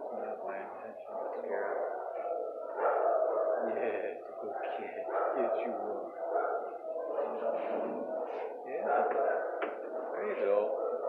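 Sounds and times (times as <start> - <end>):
dogs barking: 0.0 - 11.0.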